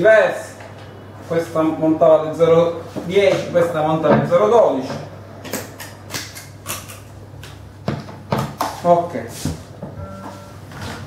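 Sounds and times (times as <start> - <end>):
guitar amplifier hum: 9.8 - 11.0.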